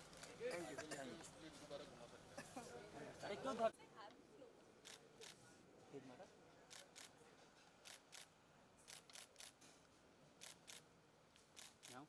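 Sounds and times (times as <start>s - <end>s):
camera shutters clicking: 8.9s - 9.6s, 11.4s - 12.0s.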